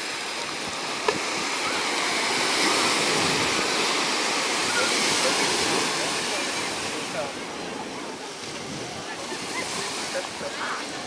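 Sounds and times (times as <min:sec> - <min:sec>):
small waves breaking on beach: 0:00.0 - 0:11.0.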